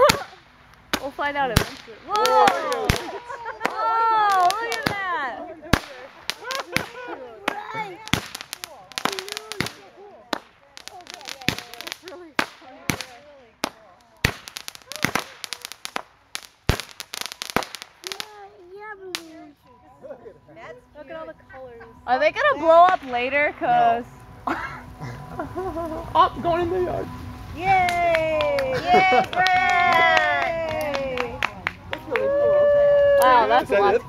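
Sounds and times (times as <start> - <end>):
fireworks bangs and pops: 0.0 - 18.5, 22.8 - 23.8.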